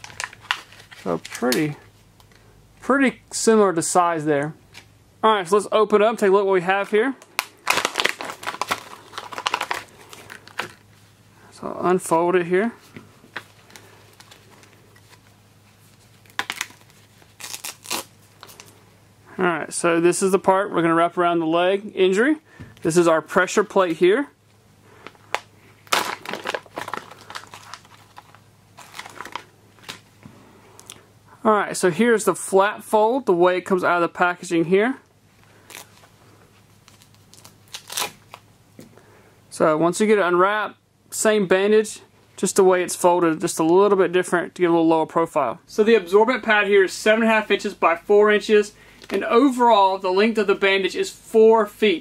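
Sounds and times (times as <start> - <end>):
plastic wrapper tearing and crinkling: 0.0 - 1.7, 6.8 - 10.8, 13.4 - 18.8, 25.0 - 30.1, 35.6 - 36.1, 36.8 - 38.4.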